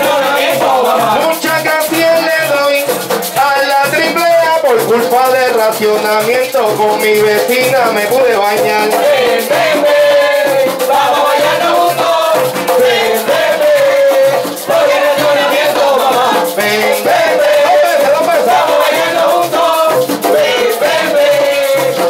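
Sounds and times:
frame drums beating: 0.0 - 22.0
rattling percussion: 0.0 - 22.0.

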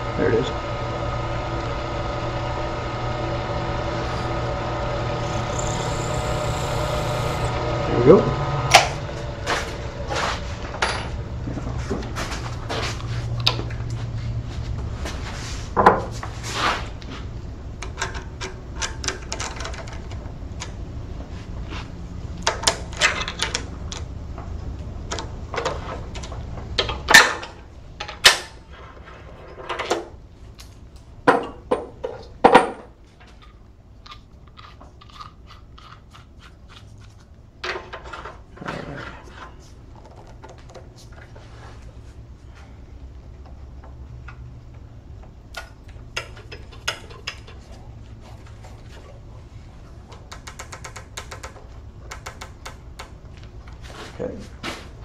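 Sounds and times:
wood lathe motor humming: 0.0 - 10.8
tools clicking and knocking: 17.8 - 20.8, 45.5 - 47.8, 50.1 - 53.2.

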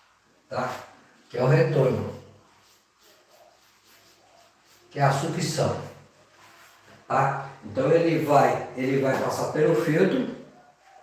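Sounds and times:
chalk strokes on blackboard: 0.0 - 11.0
man talking: 0.5 - 2.3, 5.0 - 6.0, 7.1 - 10.5.

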